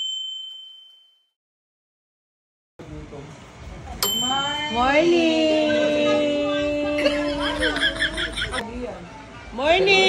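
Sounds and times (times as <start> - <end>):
high bell ding: 0.0 - 1.3, 4.0 - 5.0.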